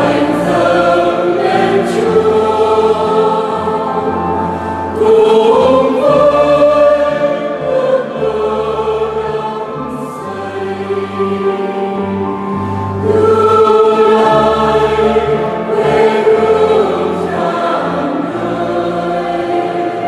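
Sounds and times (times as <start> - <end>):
mixed choir singing a hymn: 0.0 - 20.0.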